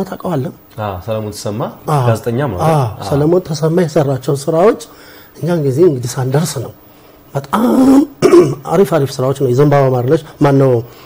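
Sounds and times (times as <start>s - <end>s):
man speaking: 0.0s - 8.0s
man clearing throat: 7.5s - 8.7s.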